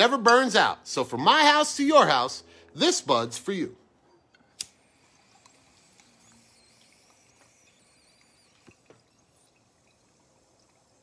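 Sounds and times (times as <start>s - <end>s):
lighter click: 4.6s - 4.8s.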